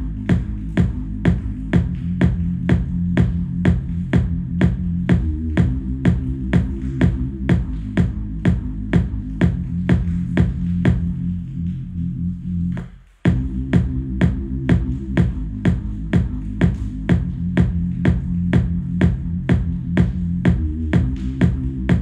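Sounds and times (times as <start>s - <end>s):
synth bass notes: 0.0s - 22.0s
electronic beat drum hits: 13.3s - 22.0s.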